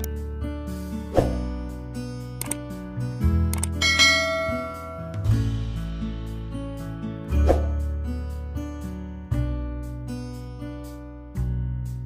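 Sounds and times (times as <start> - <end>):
acoustic guitar music: 0.0 - 12.0
click sound effect: 2.4 - 2.6, 3.5 - 3.8
bright bell chime: 3.8 - 5.4.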